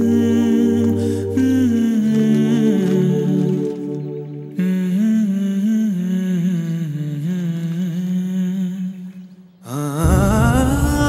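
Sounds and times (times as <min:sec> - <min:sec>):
wordless humming voice: 0:00.0 - 0:11.0
held low note: 0:10.0 - 0:11.0.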